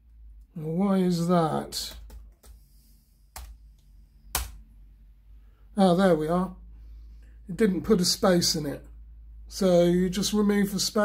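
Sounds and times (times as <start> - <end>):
laptop key presses: 3.3 - 3.6, 4.3 - 4.6.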